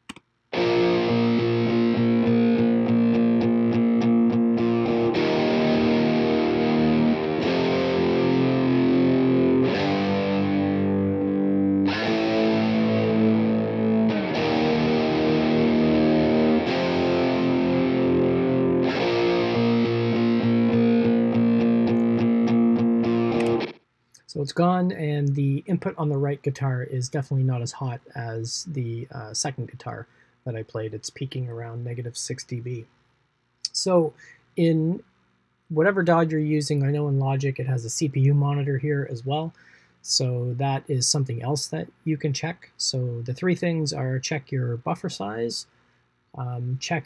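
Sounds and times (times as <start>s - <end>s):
distorted electric guitar chords: 0.6s - 23.8s.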